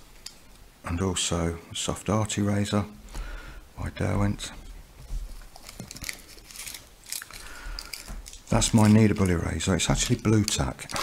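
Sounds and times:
paper wrapper crinkling: 0:05.0 - 0:11.0.

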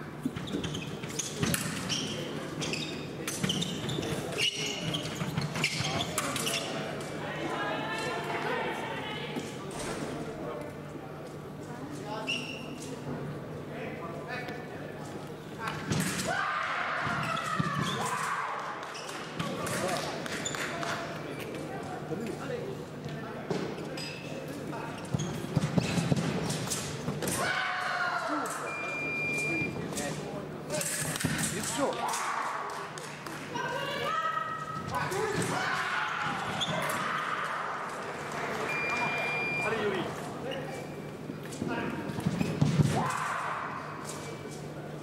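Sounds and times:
distant voices in a hall: 0:00.0 - 0:45.0.

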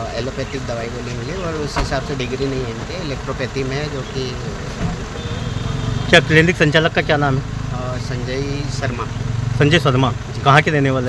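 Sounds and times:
quiet talking voices: 0:00.0 - 0:05.1.

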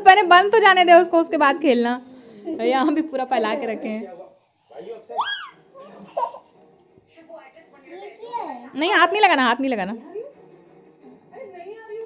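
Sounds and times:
young child laughing: 0:05.2 - 0:06.5.

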